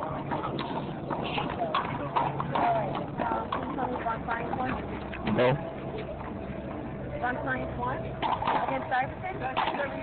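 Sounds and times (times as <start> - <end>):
indistinct voices talking: 0.0 - 10.0
steady low hum: 0.0 - 10.0.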